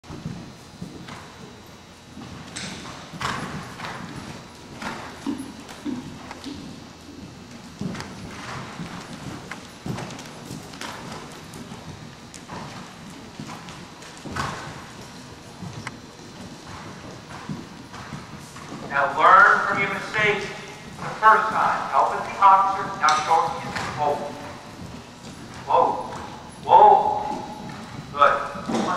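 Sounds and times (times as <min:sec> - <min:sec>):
horse hoofbeats on dirt: 0:00.0 - 0:28.9.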